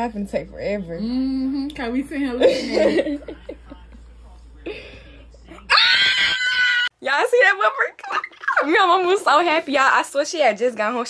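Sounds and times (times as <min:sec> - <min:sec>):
woman screaming with excitement: 0:05.7 - 0:06.9.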